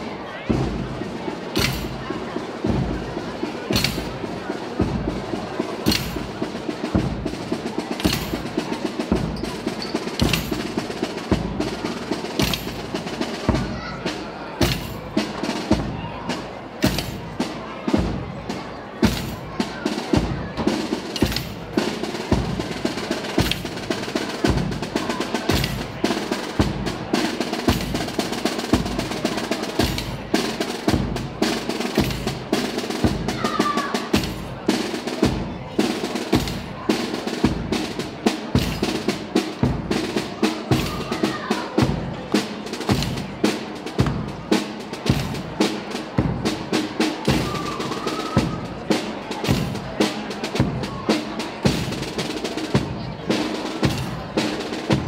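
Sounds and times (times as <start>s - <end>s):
snare drum rolls: 0.0s - 55.0s.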